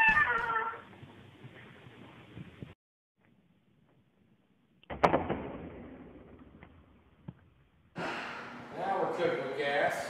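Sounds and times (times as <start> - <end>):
meow-like animal call: 0.0 - 0.9.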